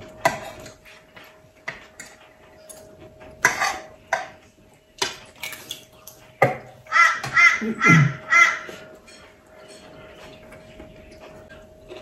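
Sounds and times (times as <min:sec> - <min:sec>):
crow cawing: 0:06.9 - 0:08.8.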